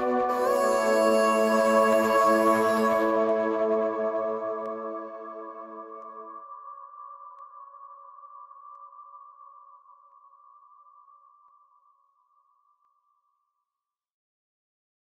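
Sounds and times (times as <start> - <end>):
reverberant a cappella vocal chord: 0.0 - 6.3.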